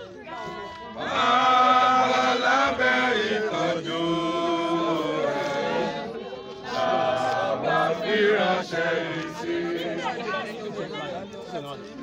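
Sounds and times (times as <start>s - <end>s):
voices singing a slow chant: 0.2s - 11.3s.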